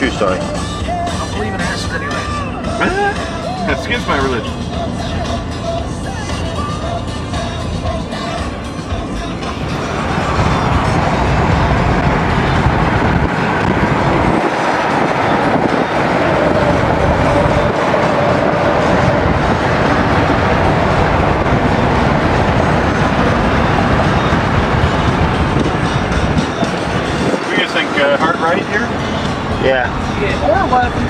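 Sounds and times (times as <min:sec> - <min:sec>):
tyre and road noise inside car: 0:00.0 - 0:31.0.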